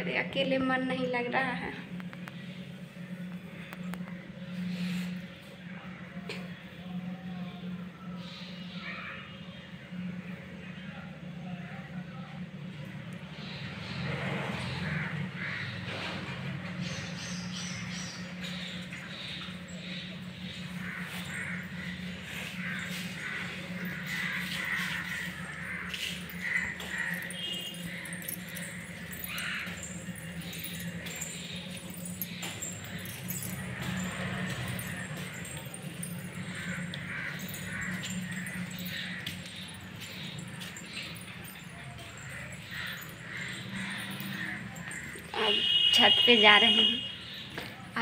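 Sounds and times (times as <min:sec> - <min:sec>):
steady low hum: 0:00.0 - 0:13.8, 0:17.0 - 0:47.5
harsh bird calls: 0:13.4 - 0:48.0.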